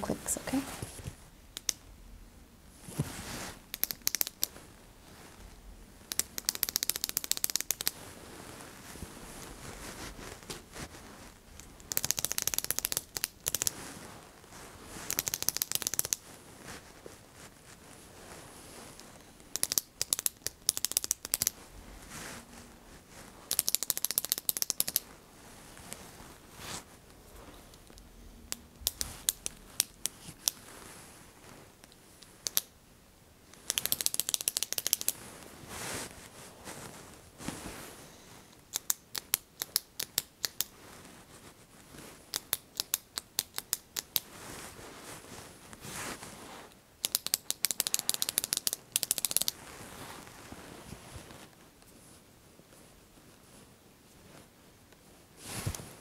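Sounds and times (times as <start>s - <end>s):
pen button clicking rapidly: 11.9s - 13.7s.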